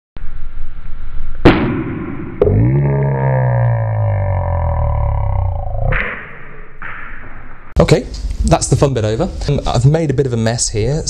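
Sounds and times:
slowed-down drawn-out voice: 2.4s - 5.9s.

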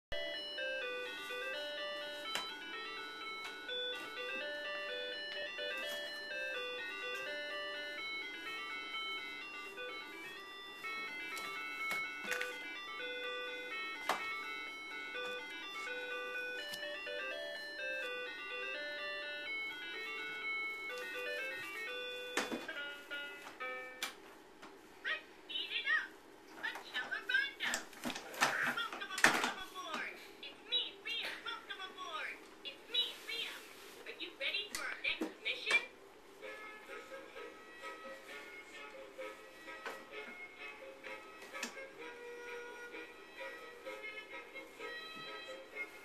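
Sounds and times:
electronic toy beeping melody: 0.2s - 24.1s.

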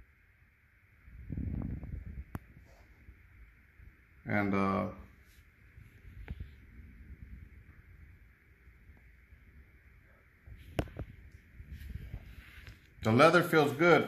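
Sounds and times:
low hiss: 0.0s - 14.0s.

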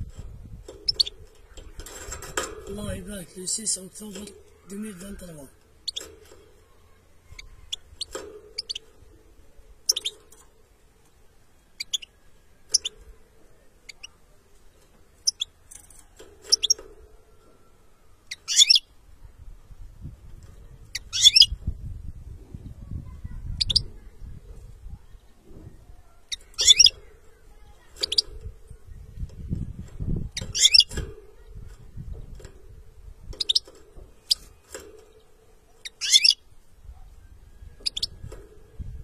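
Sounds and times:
finch twittering song: 0.5s - 1.8s, 2.6s - 9.2s, 9.8s - 10.5s, 11.7s - 13.0s, 15.2s - 15.6s, 16.4s - 16.9s, 18.2s - 19.0s, 20.8s - 21.6s, 23.3s - 24.1s, 25.0s - 31.0s, 33.2s - 38.4s.

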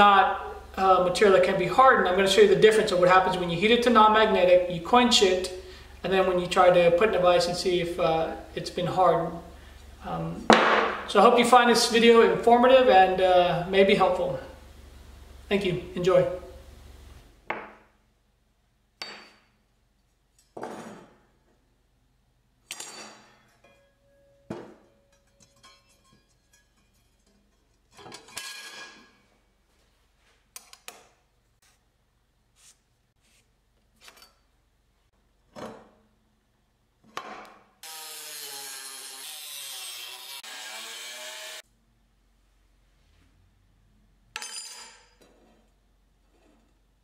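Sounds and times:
steel bar clinking on metal bench: 22.7s - 27.3s
angle grinder cutting steel: 37.8s - 41.6s.

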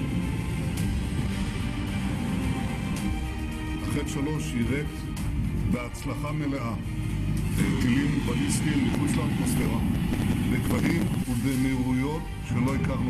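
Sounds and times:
background music: 0.0s - 13.0s
man speaking: 7.6s - 13.0s.

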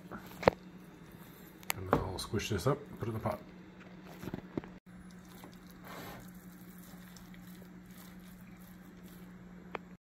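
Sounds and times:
steady low hum: 0.0s - 10.0s
wet squishing of stirred meat: 5.0s - 9.4s.

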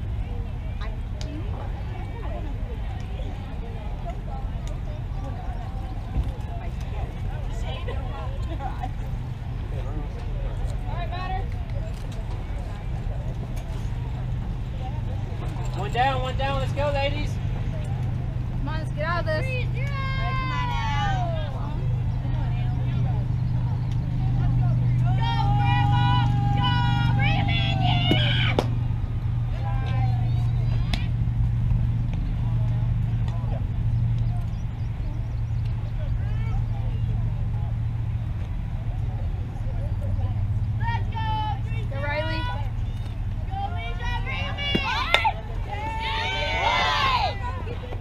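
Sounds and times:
girls calling out cheers: 19.6s - 21.5s, 25.0s - 28.6s.

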